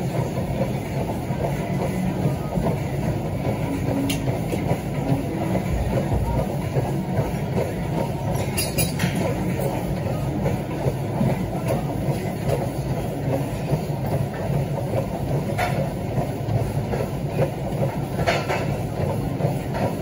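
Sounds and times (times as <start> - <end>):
treadmill motor and belt running: 0.0 - 20.0
walking footsteps on treadmill: 0.0 - 20.0.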